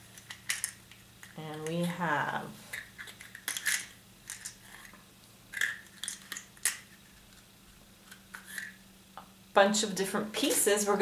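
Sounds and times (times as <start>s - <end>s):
plastic capsule clicks and rustles: 0.1s - 1.9s, 2.7s - 8.8s.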